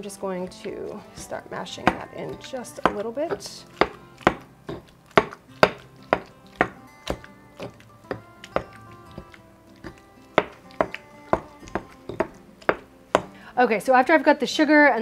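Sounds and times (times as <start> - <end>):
faint background music: 0.0 - 15.0
stone pestle knocking and grinding: 1.2 - 13.4.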